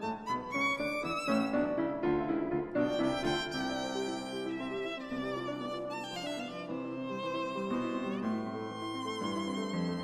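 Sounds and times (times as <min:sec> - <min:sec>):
grand piano: 0:00.0 - 0:10.0
violin melody: 0:00.0 - 0:10.0.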